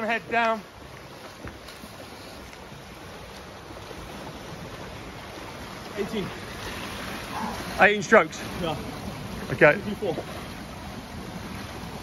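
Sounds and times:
swimmers splashing in pool: 3.4 - 11.8.

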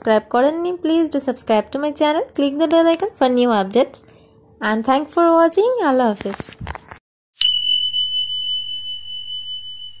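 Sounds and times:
high-pitched electronic beep tone: 7.4 - 10.0.

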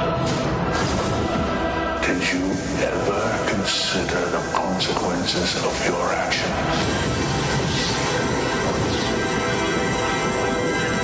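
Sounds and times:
faint music: 0.0 - 11.0
loud rushing noise: 0.0 - 11.0.

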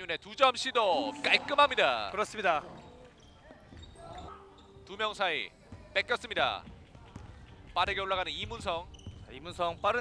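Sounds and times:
basketball bouncing on hardwood: 6.6 - 10.0.

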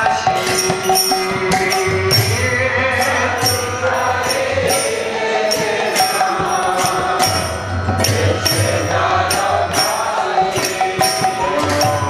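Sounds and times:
hand drum beaten with stick: 0.0 - 12.0
man singing amplified: 0.0 - 12.0
ringing percussion strikes: 0.0 - 12.0.

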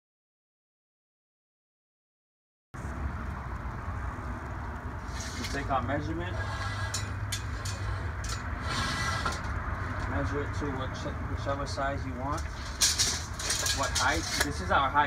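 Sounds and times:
steady low rumble: 2.8 - 15.0.

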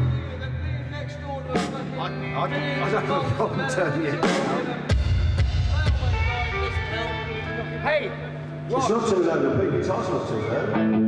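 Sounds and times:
electric guitar notes through amplifier: 5.7 - 11.0.

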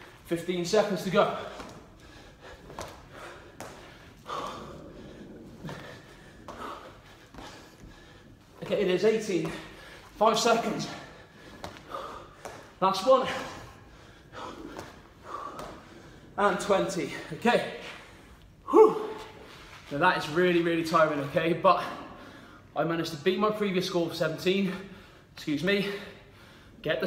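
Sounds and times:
man breathing hard: 1.2 - 8.6, 9.2 - 16.4, 24.7 - 26.8.

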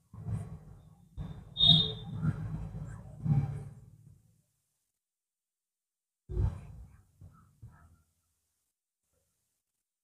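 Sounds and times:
high squeak of marker tip: 1.6 - 2.1.

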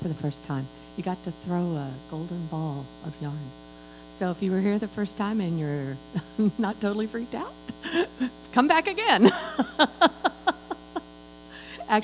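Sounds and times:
electrical hum: 0.0 - 12.0
woman laughing into microphone: 6.2 - 6.8, 7.6 - 8.4, 9.2 - 11.9.

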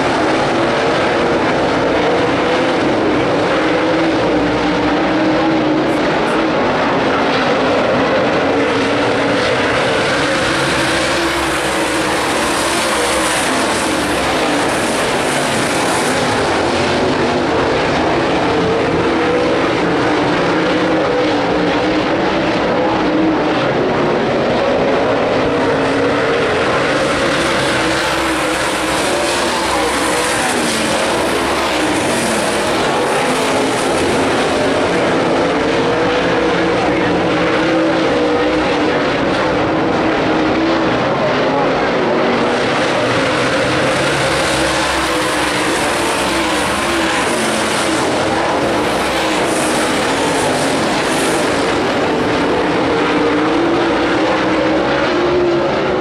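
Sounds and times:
race car engines running hard: 0.0 - 56.0.

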